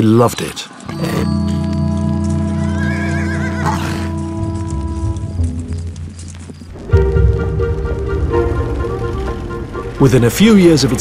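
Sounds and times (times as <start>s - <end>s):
background music with held notes: 0.9s - 11.0s
horse whinnying: 2.5s - 4.3s.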